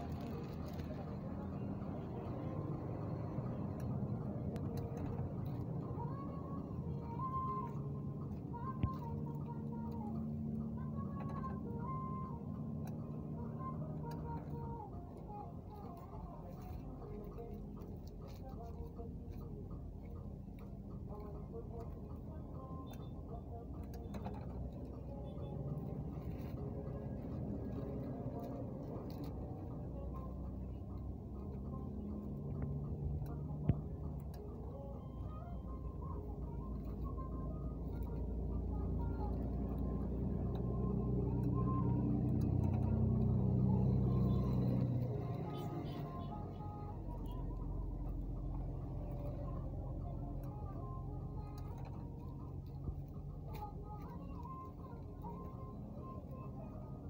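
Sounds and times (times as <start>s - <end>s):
low rumble: 0.0s - 57.0s.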